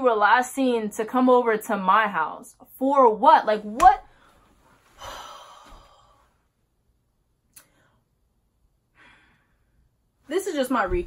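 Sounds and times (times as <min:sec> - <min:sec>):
woman sighing: 0:05.0 - 0:06.2.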